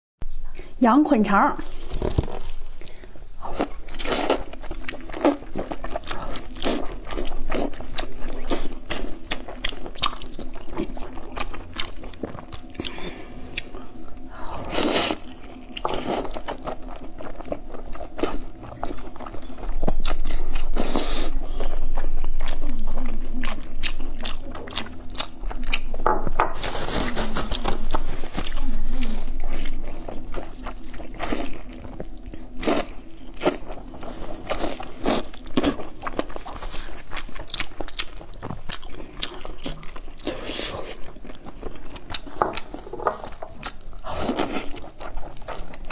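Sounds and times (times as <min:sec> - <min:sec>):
chewing and wet mouth sounds: 0:01.7 - 0:26.0, 0:27.2 - 0:45.9.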